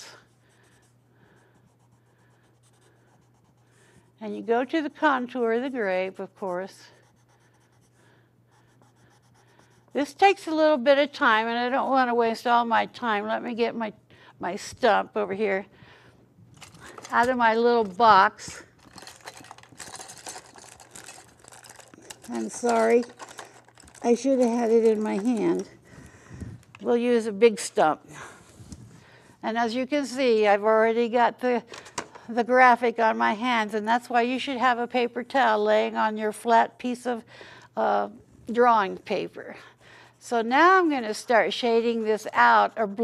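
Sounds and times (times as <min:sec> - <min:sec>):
low steady hum: 0:00.0 - 0:43.0
charcoal pencil scratching paper: 0:00.1 - 0:03.8, 0:04.8 - 0:10.1
pencils and tools clicking and rustling: 0:16.5 - 0:26.9.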